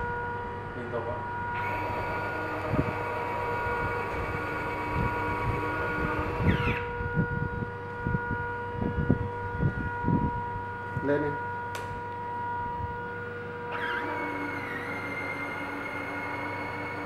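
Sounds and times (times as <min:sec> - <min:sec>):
small geared motor whirring: 0:01.2 - 0:10.2, 0:13.6 - 0:17.0.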